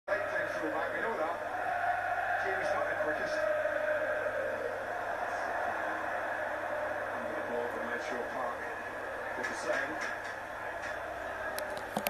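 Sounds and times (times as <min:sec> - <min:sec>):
muffled television voices: 0:00.1 - 0:12.0.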